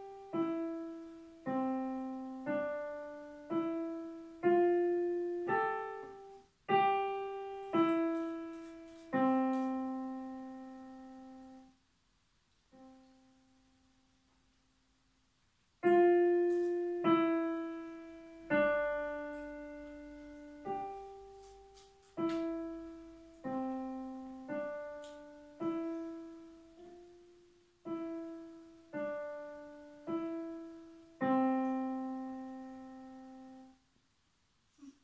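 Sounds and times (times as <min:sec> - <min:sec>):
digital piano single notes: 0:00.0 - 0:11.7, 0:15.8 - 0:33.8.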